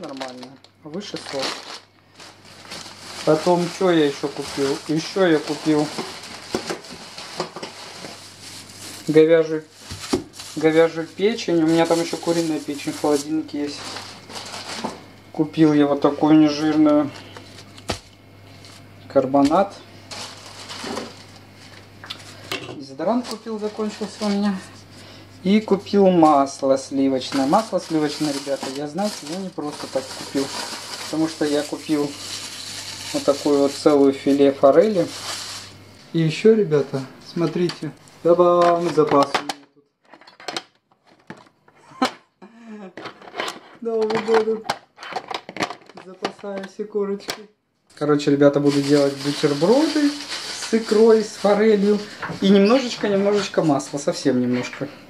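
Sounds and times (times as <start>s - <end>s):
plastic packaging crinkling: 0.0s - 15.2s, 16.4s - 36.2s, 48.4s - 54.2s
low steady hum: 0.0s - 55.0s.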